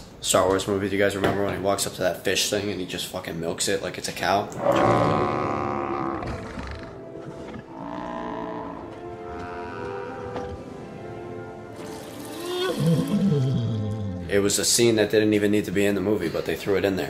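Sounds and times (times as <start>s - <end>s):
film music score: 4.5s - 17.0s
sea creature drawn-out calls: 7.7s - 10.6s, 11.8s - 14.3s.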